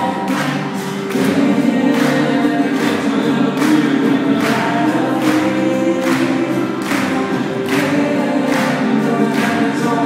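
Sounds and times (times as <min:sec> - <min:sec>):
group singing in harmony: 0:00.0 - 0:10.0.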